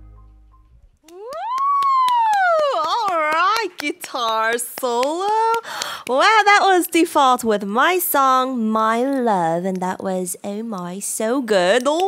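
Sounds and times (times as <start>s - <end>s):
guitar and bass chord ringing: 0.0s - 0.9s
hand clapping: 1.0s - 6.6s
person shouting wow: 1.1s - 3.1s.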